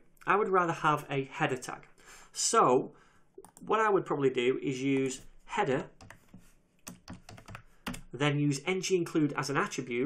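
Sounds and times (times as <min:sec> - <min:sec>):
computer keyboard typing: 0:05.9 - 0:08.1.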